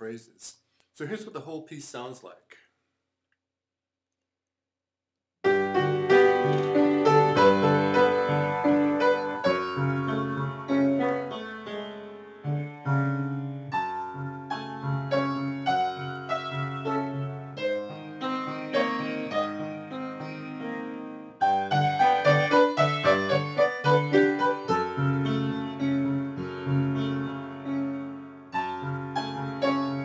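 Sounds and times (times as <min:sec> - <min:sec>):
solo piano piece: 0:05.4 - 0:30.0.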